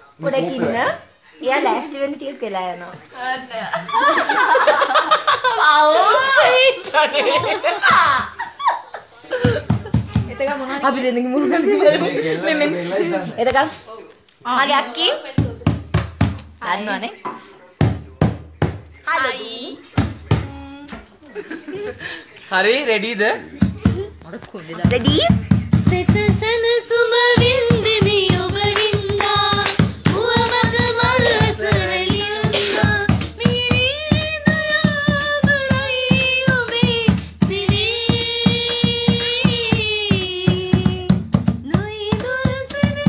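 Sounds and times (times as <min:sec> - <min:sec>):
hand claps or hand-drum beat: 0:09.4 - 0:10.5, 0:15.4 - 0:16.6, 0:17.8 - 0:18.9, 0:19.9 - 0:21.0, 0:23.6 - 0:43.0
woman singing long notes: 0:20.4 - 0:21.0, 0:25.9 - 0:43.0.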